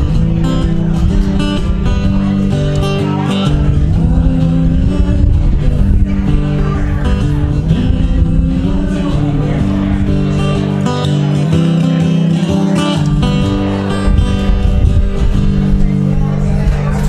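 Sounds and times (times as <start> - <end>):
acoustic guitar strumming: 0.0 - 17.0.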